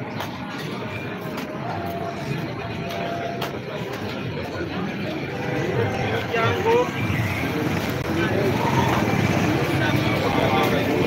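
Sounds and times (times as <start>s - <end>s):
people talking: 0.0s - 11.0s
motor vehicle running: 5.2s - 11.0s.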